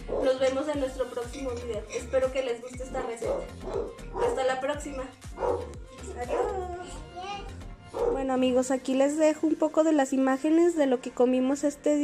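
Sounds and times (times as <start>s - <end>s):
background music with bass line: 0.0s - 9.7s
dog barking: 0.1s - 0.4s, 3.2s - 4.4s, 5.3s - 6.6s, 7.9s - 8.3s.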